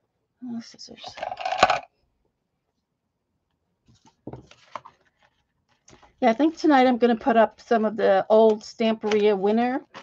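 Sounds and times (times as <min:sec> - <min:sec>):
faint taps and rustles: 0:03.8 - 0:06.2.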